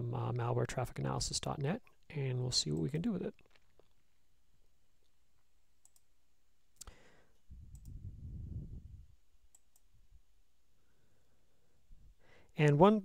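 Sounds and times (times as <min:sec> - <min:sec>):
computer mouse clicks: 0:05.8 - 0:06.1, 0:07.7 - 0:08.0
soft low rumble: 0:07.5 - 0:09.2.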